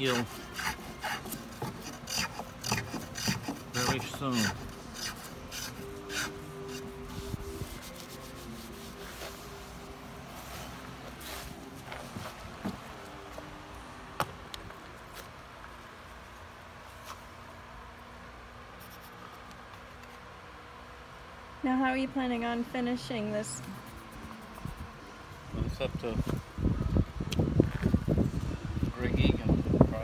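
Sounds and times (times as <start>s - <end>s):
hand tool scraping wood: 0.0s - 9.0s.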